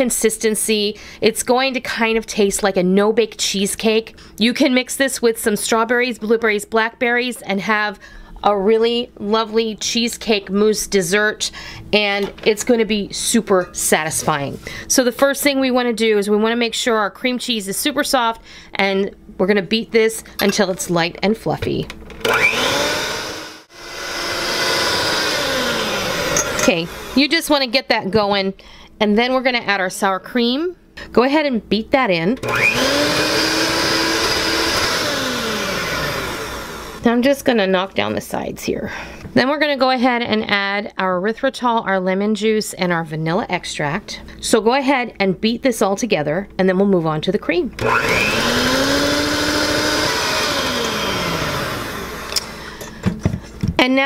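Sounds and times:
electric hand mixer whining: 0:22.1 - 0:27.3, 0:32.4 - 0:37.0, 0:47.8 - 0:52.9.

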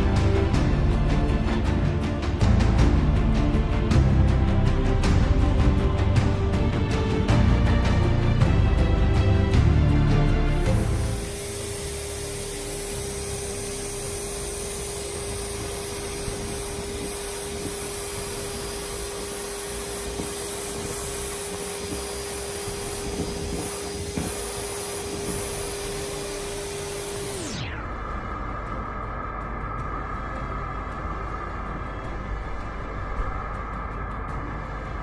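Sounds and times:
vacuum cleaner running: 0:10.6 - 0:28.6.

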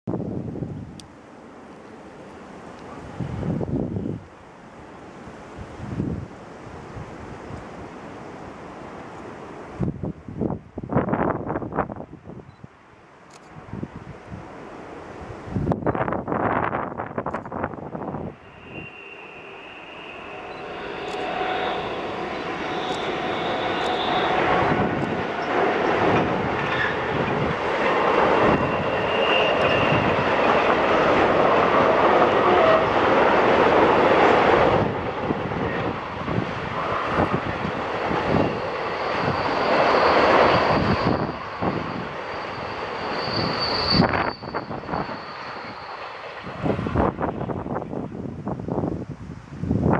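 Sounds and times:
wind buffeting microphone: 0:00.1 - 0:01.1, 0:02.9 - 0:04.3, 0:05.4 - 0:08.0, 0:09.6 - 0:12.6, 0:13.4 - 0:19.0, 0:20.3 - 0:49.9
freight train wheels rumbling: 0:13.6 - 0:49.1
thin high steady tones: 0:17.9 - 0:31.0, 0:37.6 - 0:47.1.

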